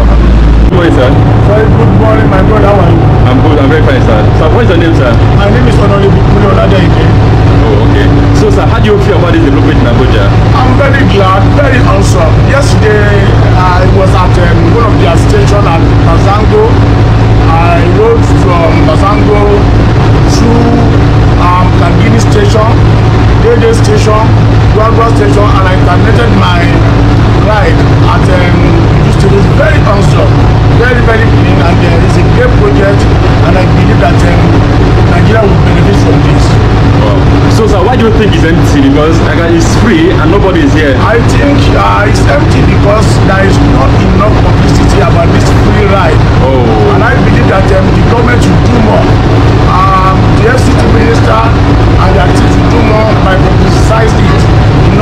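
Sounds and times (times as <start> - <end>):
low hum of train carriage: 0.0 - 55.0
man talking: 0.0 - 55.0.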